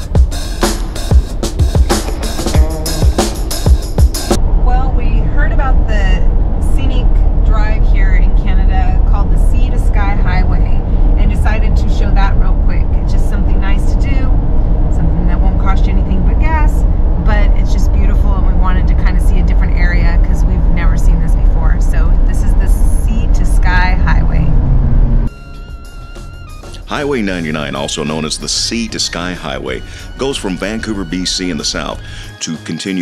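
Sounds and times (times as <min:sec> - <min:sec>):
road and engine rumble in vehicle: 0:00.0 - 0:30.7
woman talking: 0:04.6 - 0:14.4, 0:15.0 - 0:24.6.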